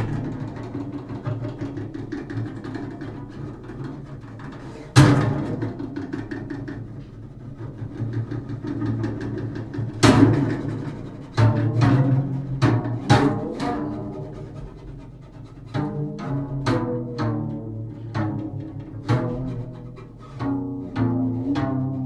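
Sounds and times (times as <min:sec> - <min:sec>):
double bass strings tapped with stick: 0:00.0 - 0:22.0
hard strikes on double bass: 0:05.0 - 0:22.0.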